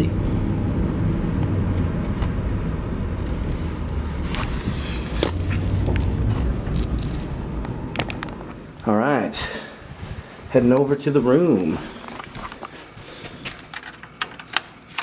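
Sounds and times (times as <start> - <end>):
car cabin engine and tyre rumble: 0.0 - 8.9.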